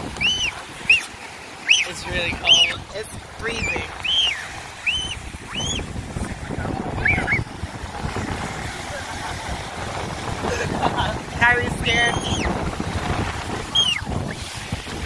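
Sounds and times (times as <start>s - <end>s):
ocean waves breaking: 0.0s - 15.0s
wind buffeting microphone: 0.0s - 15.0s
short high arched calls: 0.2s - 2.8s, 3.6s - 5.9s.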